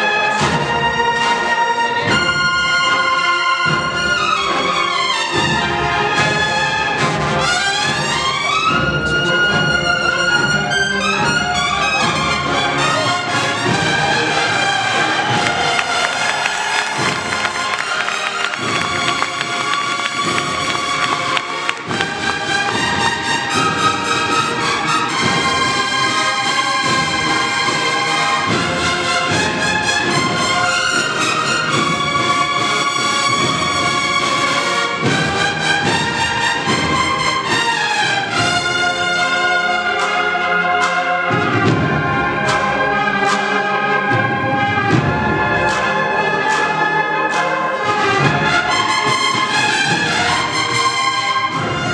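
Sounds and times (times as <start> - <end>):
bugles playing a march melody: 0.0 - 51.9
steady drum beat: 11.2 - 39.5.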